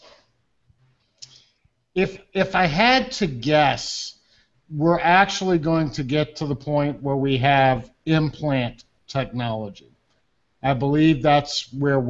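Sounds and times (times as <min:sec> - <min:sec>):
man speaking: 0:02.0 - 0:09.9, 0:10.6 - 0:12.0.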